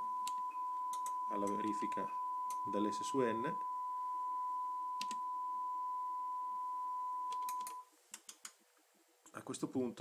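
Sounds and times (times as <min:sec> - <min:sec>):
sine test tone: 0:00.0 - 0:07.9.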